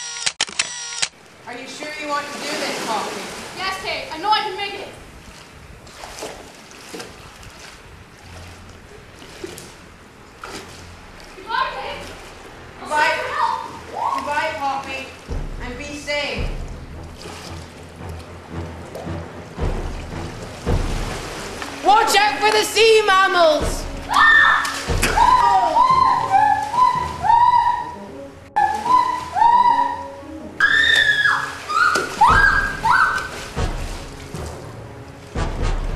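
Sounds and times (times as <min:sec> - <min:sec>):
splashes of legs wading: 0:01.2 - 0:27.8, 0:30.6 - 0:35.9
low wind rumble: 0:01.2 - 0:35.9
steady wash of water: 0:01.2 - 0:35.9
low music notes: 0:14.3 - 0:35.9
whistle-like music melody: 0:24.1 - 0:33.4.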